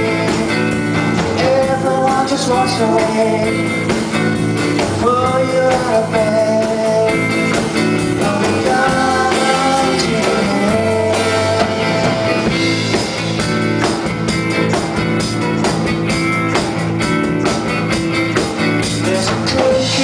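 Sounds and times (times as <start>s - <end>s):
drums: 0.0s - 20.0s
guitar chords: 0.0s - 20.0s.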